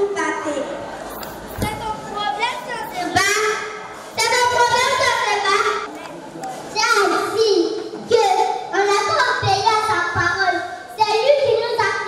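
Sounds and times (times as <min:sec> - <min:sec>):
children speaking: 0:00.0 - 0:12.0.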